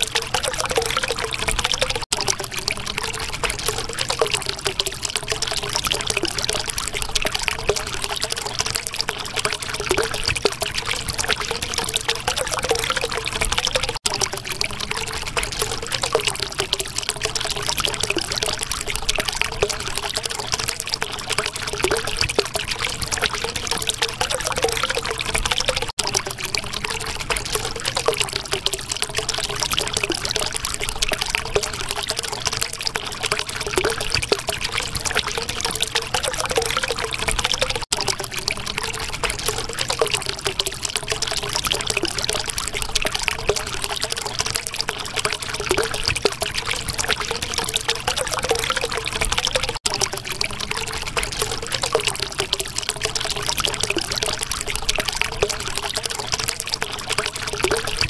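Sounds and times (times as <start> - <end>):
water flowing and trickling: 0.0 - 58.0.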